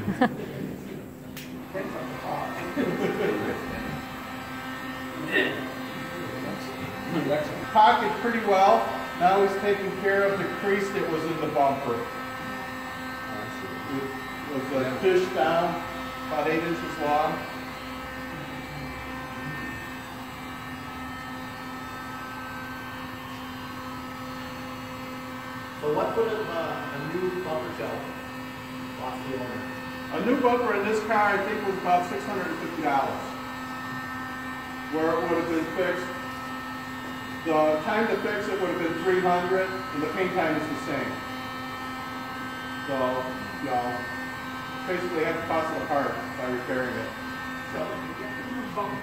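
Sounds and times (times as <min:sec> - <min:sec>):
heat gun fan hum: 0:00.0 - 0:49.0.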